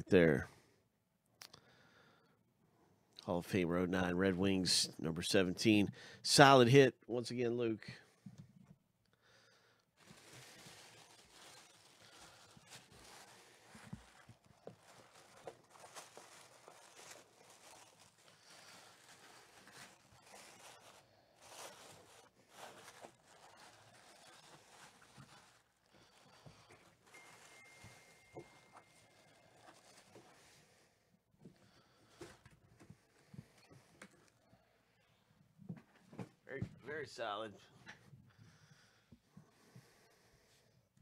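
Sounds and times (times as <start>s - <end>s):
tissue paper rustling: 10.0s - 30.8s
faint steady high tone: 27.0s - 29.2s.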